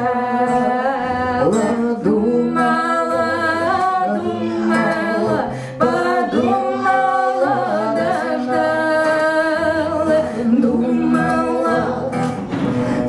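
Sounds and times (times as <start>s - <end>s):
acoustic guitar: 0.0s - 13.0s
women singing folk song: 0.0s - 13.0s.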